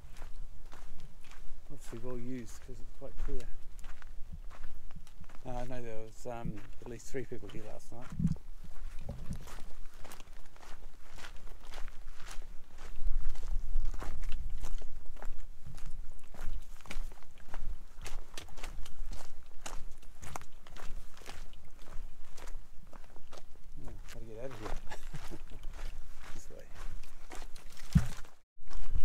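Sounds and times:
footsteps crunching on ground: 0.0s - 29.0s.

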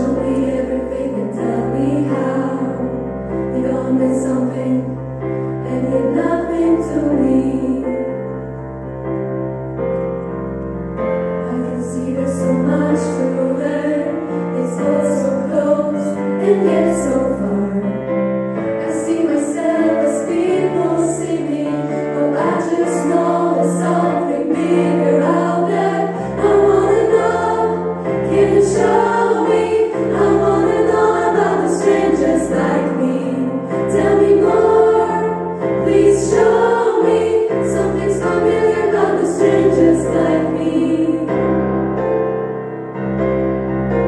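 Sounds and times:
women singing in harmony: 0.0s - 5.0s, 5.6s - 8.1s, 11.4s - 18.0s, 18.7s - 41.5s
piano accompaniment: 0.0s - 44.0s.

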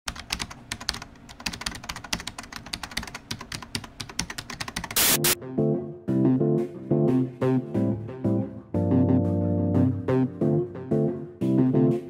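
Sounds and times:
keyboard typing: 0.1s - 5.4s.

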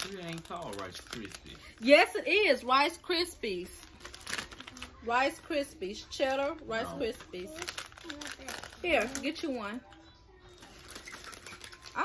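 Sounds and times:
snack packets rustling: 0.0s - 2.0s, 3.6s - 5.0s, 6.0s - 12.0s.

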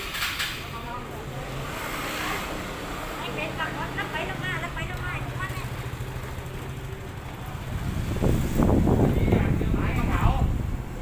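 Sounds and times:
scooter engine idling: 3.6s - 8.0s.

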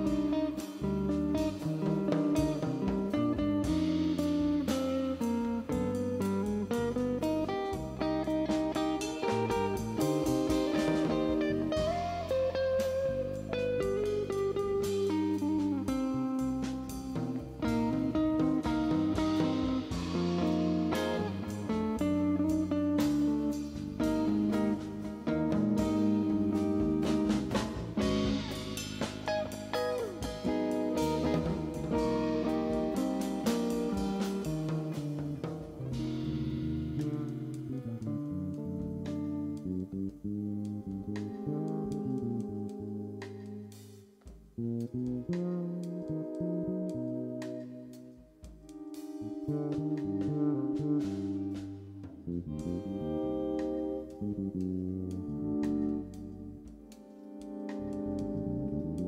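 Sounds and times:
drum kit: 0.0s - 59.0s
electric bass: 0.0s - 59.0s
electric guitar melodic lines: 0.0s - 59.0s.

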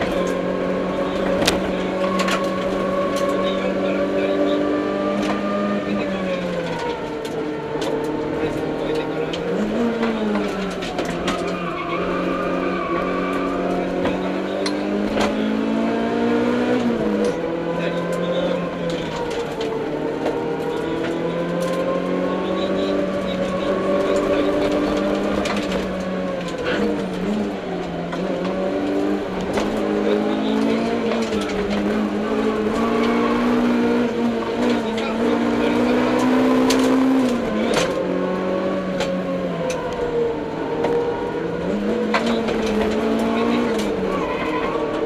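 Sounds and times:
rally car engine from cabin: 0.0s - 45.0s.

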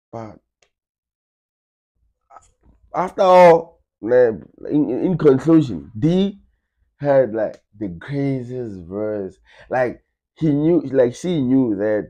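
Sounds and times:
man speaking: 0.2s - 0.4s, 3.0s - 6.4s, 7.0s - 12.0s.

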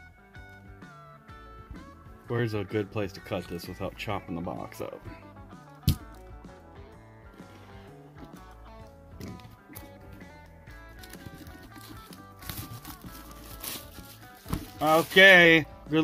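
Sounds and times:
background music with bass line: 0.0s - 16.0s
plastic shrink wrap crinkling: 10.9s - 15.6s.

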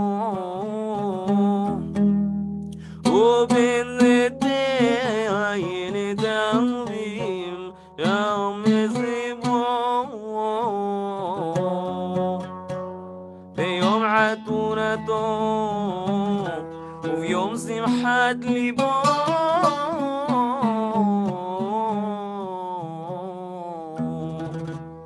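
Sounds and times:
man singing a hymn: 0.0s - 1.8s, 3.0s - 12.4s, 13.6s - 24.7s
instrumental accompaniment: 11.5s - 22.0s.

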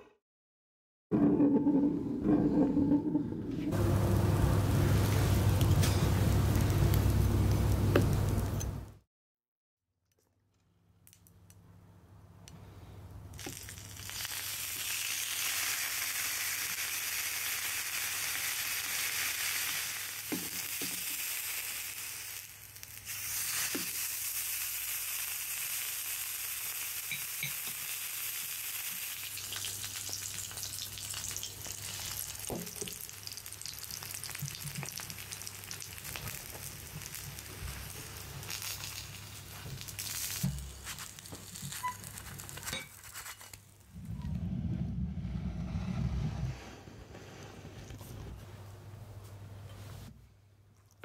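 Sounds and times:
steak sizzling in a pan: 13.4s - 42.6s.

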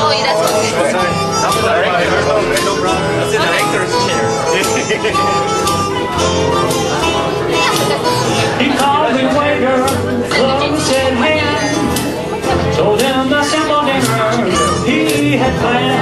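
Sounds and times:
steady strummed rhythm: 0.0s - 16.0s.

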